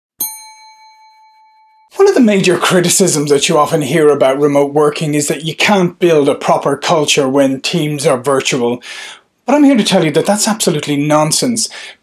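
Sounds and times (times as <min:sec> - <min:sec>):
bell-like ding: 0:00.2 - 0:02.0.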